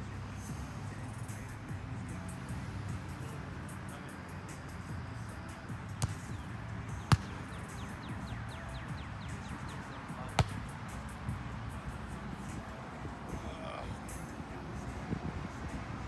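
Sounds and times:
background music: 0:00.0 - 0:16.0
hands slapping a volleyball: 0:06.0 - 0:06.3, 0:07.0 - 0:07.3, 0:10.4 - 0:10.7.

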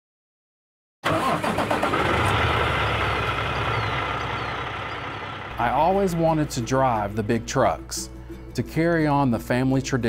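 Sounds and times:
diesel engine cranking: 0:01.0 - 0:07.3
diesel engine idling: 0:01.1 - 0:07.5.

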